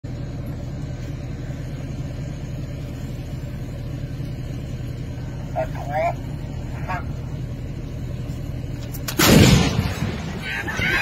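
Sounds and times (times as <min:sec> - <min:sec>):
large vehicle engine idling: 0:00.0 - 0:11.0.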